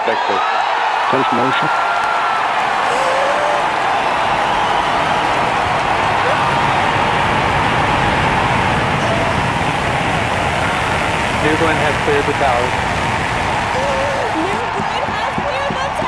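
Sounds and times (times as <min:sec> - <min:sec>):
crowd cheering and whooping: 0:00.0 - 0:16.0
rocket engines roaring: 0:00.0 - 0:16.0.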